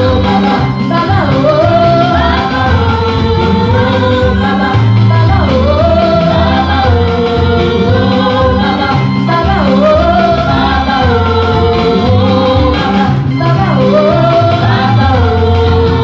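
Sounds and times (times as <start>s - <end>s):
band with moving bass line: 0.0s - 16.0s
group singing gospel praise song: 0.0s - 16.0s.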